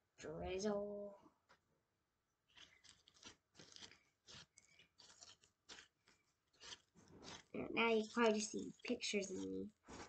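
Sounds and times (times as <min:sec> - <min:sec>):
slime clicking and crackling: 0:02.5 - 0:10.0.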